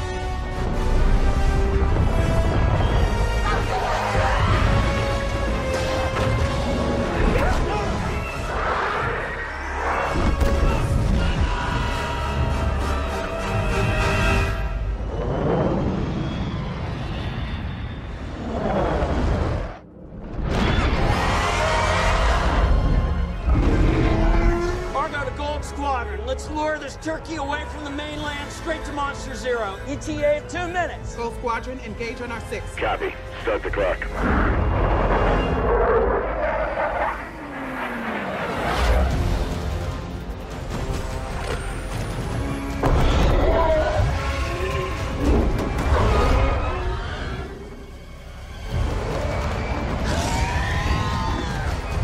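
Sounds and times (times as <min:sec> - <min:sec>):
music: 0:00.0 - 0:18.4, 0:19.9 - 0:36.4, 0:38.6 - 0:52.0
jet aircraft engines roaring: 0:36.0 - 0:39.8.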